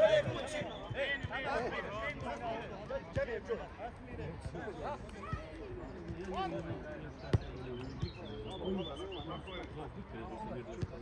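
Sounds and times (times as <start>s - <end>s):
players calling and shouting: 0.0s - 11.0s.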